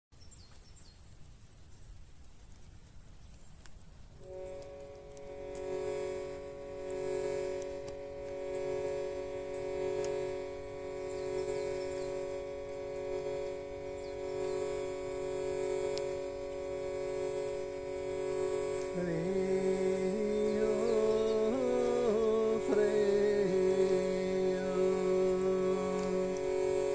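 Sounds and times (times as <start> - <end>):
faint bird chirps: 0.1 - 3.7, 9.4 - 16.8, 18.2 - 26.9
harmonium drone chord: 4.2 - 26.9
man chanting: 18.7 - 26.9.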